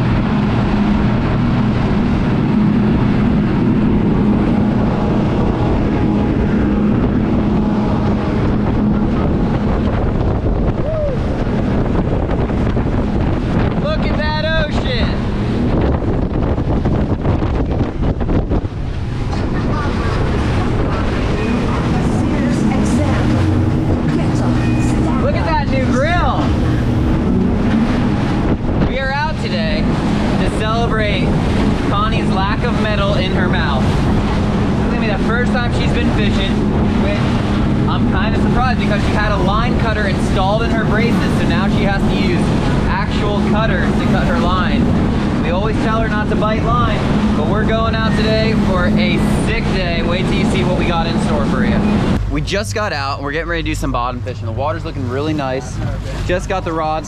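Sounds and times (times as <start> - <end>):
outboard motors running: 0.0 - 57.0
wind buffeting microphone: 0.0 - 57.0.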